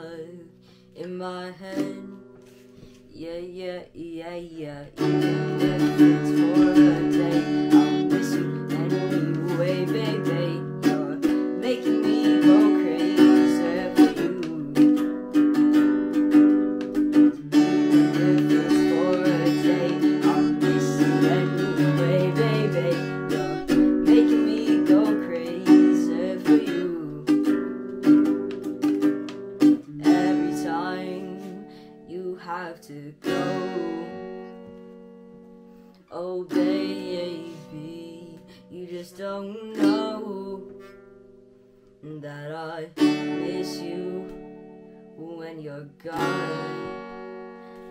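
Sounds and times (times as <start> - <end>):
boy singing: 0.0 - 2.2, 3.1 - 15.2, 17.0 - 28.8, 29.6 - 34.6, 36.1 - 40.9, 42.0 - 44.5, 45.1 - 47.2
acoustic guitar strumming: 4.8 - 41.9, 42.8 - 47.9.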